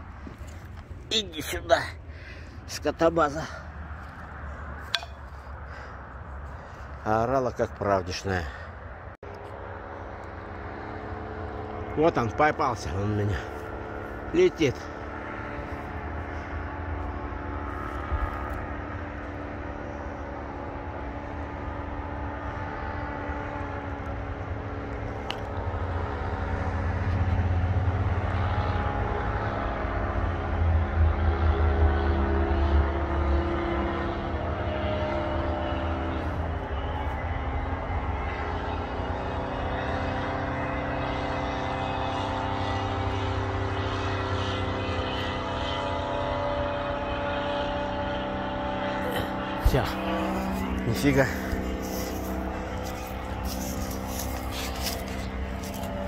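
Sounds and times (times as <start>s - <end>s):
paramotor engine droning: 0.0s - 56.0s.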